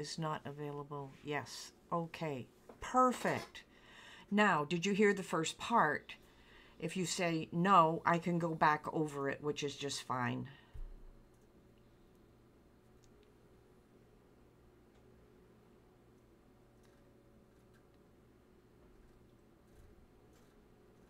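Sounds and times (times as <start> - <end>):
faint low hum: 0.0 - 21.0.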